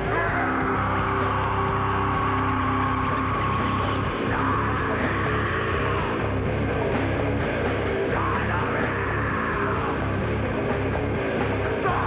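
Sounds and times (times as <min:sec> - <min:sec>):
electric guitar sustained notes: 0:00.0 - 0:12.0
live heavy rock band: 0:00.0 - 0:12.0.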